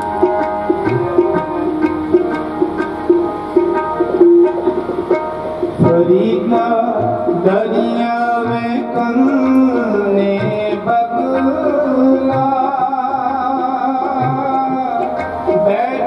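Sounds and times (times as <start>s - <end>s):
held melody: 0.0s - 16.0s
tabla playing: 0.0s - 16.0s.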